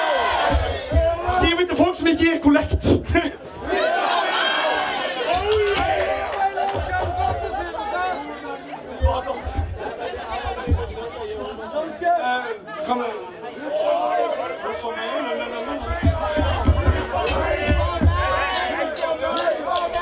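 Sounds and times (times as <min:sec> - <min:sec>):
crowd chatter: 0:00.0 - 0:20.0.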